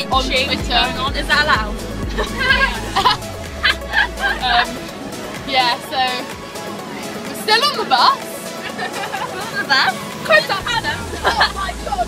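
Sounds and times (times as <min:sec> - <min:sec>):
girl giggling: 0:02.1 - 0:04.7, 0:11.0 - 0:11.7.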